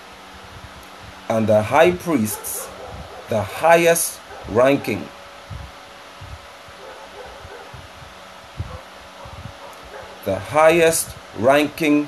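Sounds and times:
room tone hiss: 0.0s - 12.0s
faint low thumps: 5.4s - 10.3s.

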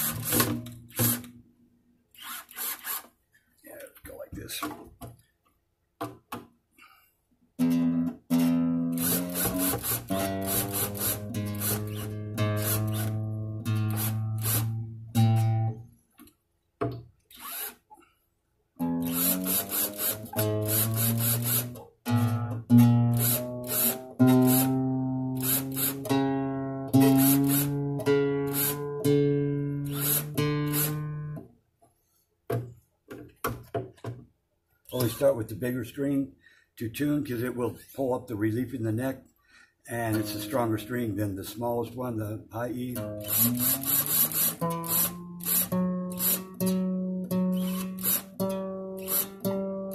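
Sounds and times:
guitar string plucked: 7.6s - 15.8s, 18.8s - 31.4s, 40.0s - 41.1s, 43.0s - 49.9s.

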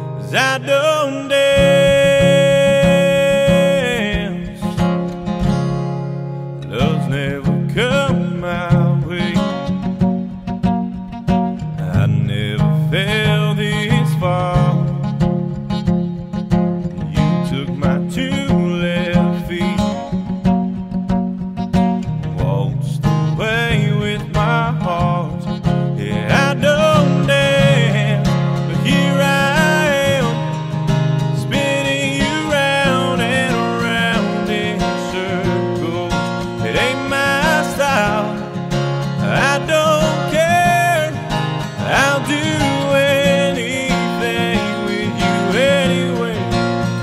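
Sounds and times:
man singing: 0.0s - 5.1s, 6.6s - 10.0s, 11.6s - 15.3s, 16.8s - 20.4s, 22.2s - 47.0s
acoustic guitar strumming: 0.0s - 47.0s.

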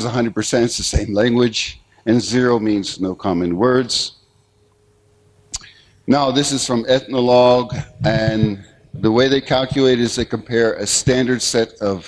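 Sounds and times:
thin steady hum: 0.0s - 12.0s.

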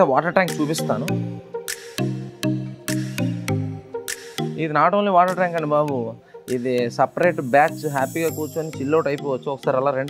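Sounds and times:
man talking: 0.0s - 1.2s, 4.6s - 10.0s
background music: 0.0s - 10.0s.

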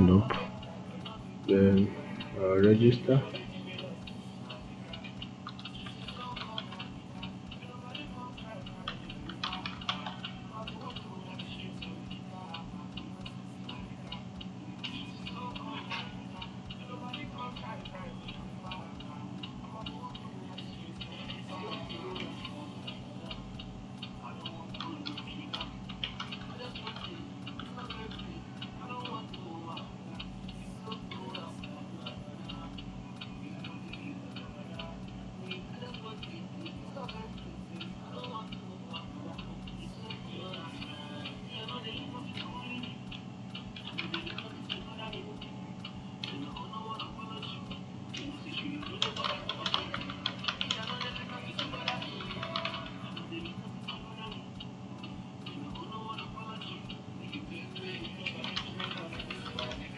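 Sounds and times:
computer keyboard typing: 0.0s - 59.9s
faint voices: 0.0s - 59.9s
low electrical hum: 0.0s - 59.9s
rapid light clicking: 0.0s - 59.9s.

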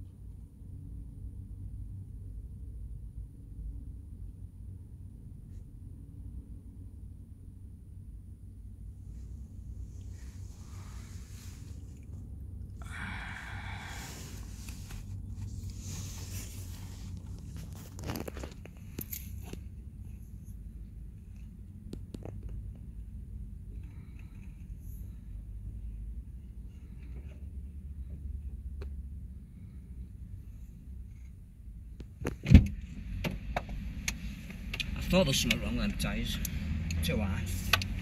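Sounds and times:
low hum inside car cabin: 0.0s - 38.0s
small clicks and rustles: 14.4s - 20.6s, 21.2s - 25.2s
car door shutting: 32.3s - 33.7s.

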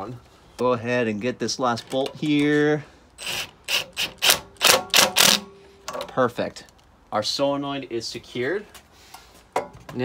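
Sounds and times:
cordless impact gun bursts: 3.2s - 5.5s.

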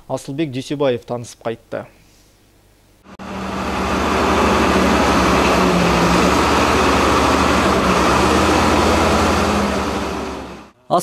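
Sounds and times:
diesel engine running: 3.0s - 10.8s.

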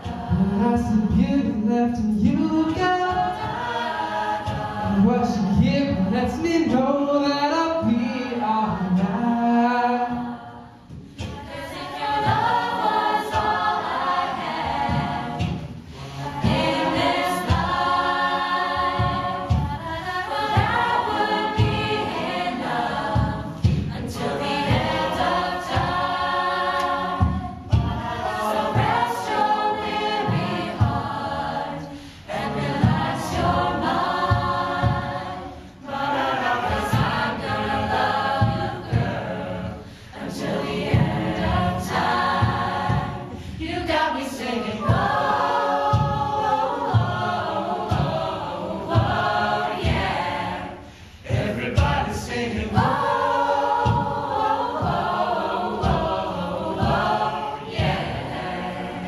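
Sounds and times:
a cappella group singing: 0.0s - 59.0s
vocal percussion beat: 0.0s - 59.0s.

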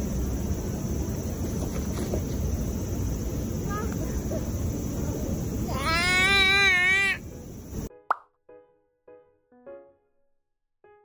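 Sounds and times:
outdoor background noise: 0.0s - 7.9s
baby squealing: 5.7s - 7.2s
pop sound effect: 7.9s - 8.4s.

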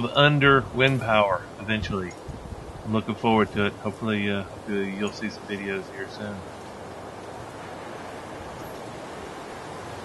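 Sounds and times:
steady wind noise: 0.0s - 10.0s.

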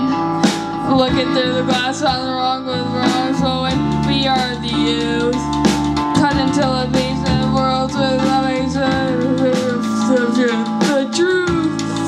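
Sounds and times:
bass guitar: 0.0s - 12.0s
drum kit beat: 0.0s - 12.0s
electric guitar lead notes: 0.0s - 12.0s.

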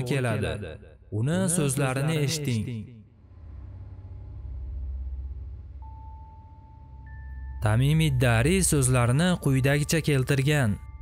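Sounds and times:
deep low drone: 3.1s - 9.1s.

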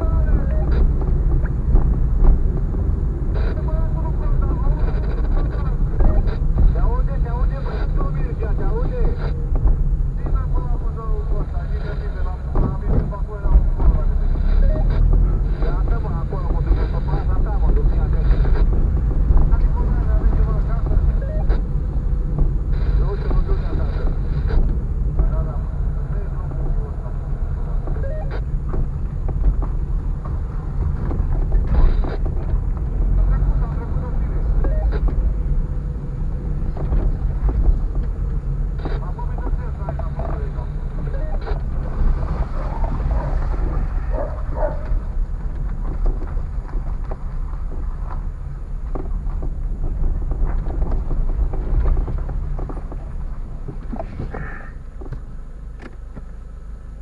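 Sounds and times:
car engine and tyre rumble: 0.0s - 57.0s.

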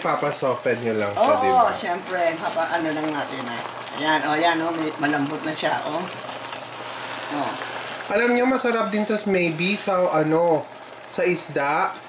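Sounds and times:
sauce bubbling and sizzling in pan: 0.0s - 12.0s.

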